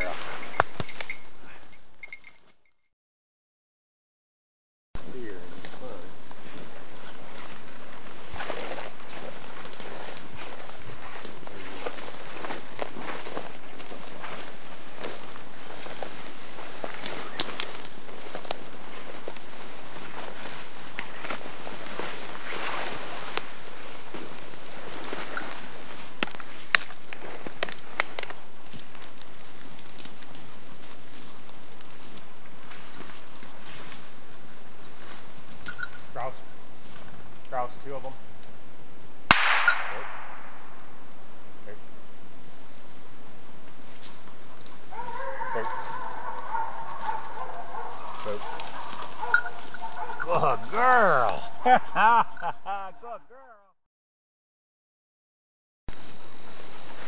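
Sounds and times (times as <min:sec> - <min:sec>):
footsteps through brush: 0:00.0 - 0:01.5, 0:05.1 - 0:38.5, 0:42.2 - 0:53.2, 0:55.9 - 0:57.0
twigs snapping: 0:11.0 - 0:19.5, 0:24.2 - 0:32.3, 0:43.4 - 0:50.2.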